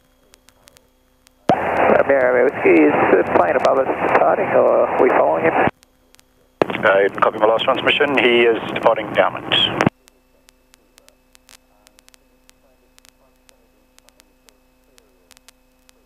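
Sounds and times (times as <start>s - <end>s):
faint steady hum: 0.0s - 16.0s
radio voice transmissions: 1.5s - 5.7s, 6.6s - 16.0s.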